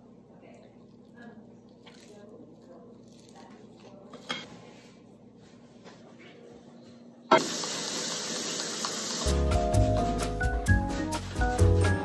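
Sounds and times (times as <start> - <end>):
faucet water running into mug: 7.3 - 9.4.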